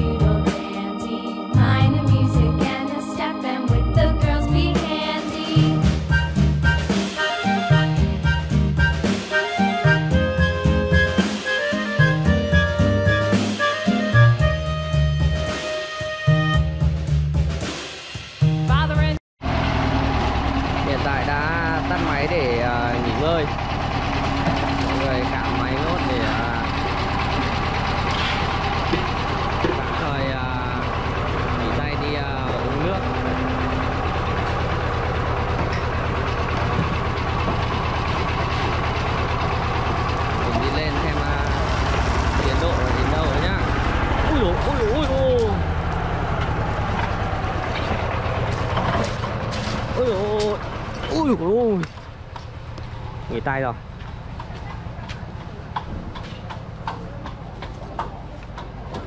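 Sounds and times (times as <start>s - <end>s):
concrete mixer engine running: 19.4s - 59.0s
people talking and calling: 20.8s - 59.0s.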